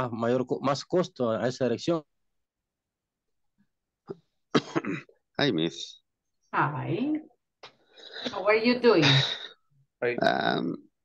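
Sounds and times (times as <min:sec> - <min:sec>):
person coughing: 0:04.5 - 0:05.2.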